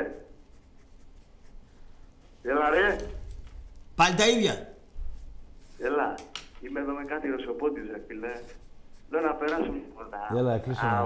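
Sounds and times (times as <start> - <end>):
pen scratching on paper: 0.0 - 2.0.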